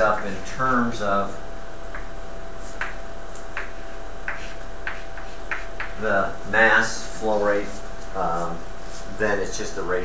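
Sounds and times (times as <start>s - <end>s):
chalk tapping on blackboard: 1.9s - 6.0s.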